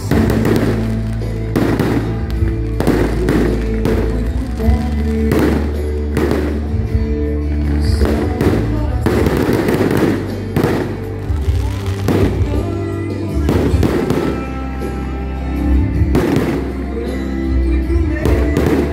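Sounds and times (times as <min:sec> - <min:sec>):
fireworks bursting: 0:00.0 - 0:15.2, 0:15.9 - 0:17.3, 0:18.2 - 0:18.9
loud music with bass line: 0:00.0 - 0:18.9.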